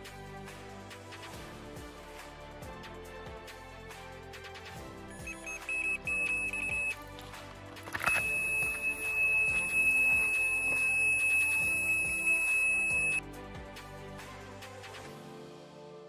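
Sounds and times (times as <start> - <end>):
bite alarm beeping: 5.2 - 7.0, 8.1 - 13.2
continuous high alarm tone: 5.2 - 7.0, 8.1 - 13.2.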